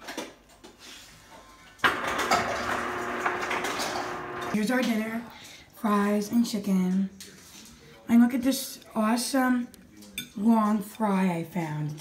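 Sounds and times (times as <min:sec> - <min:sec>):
motor humming: 0:01.9 - 0:04.6.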